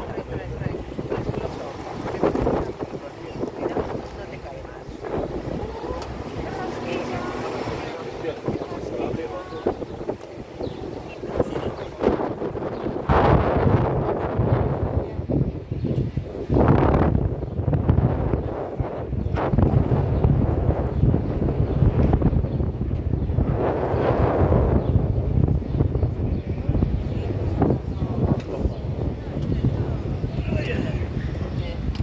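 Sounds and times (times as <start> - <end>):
bus rumble: 0.0 - 32.0
street traffic: 0.0 - 32.0
wind buffeting microphone: 0.0 - 32.0.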